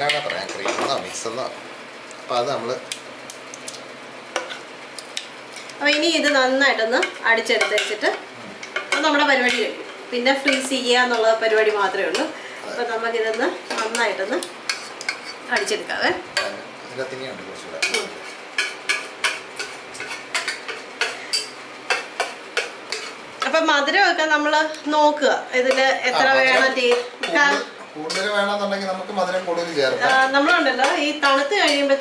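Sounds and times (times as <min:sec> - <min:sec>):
spatula scraping a steel pan: 0:17.8 - 0:23.2.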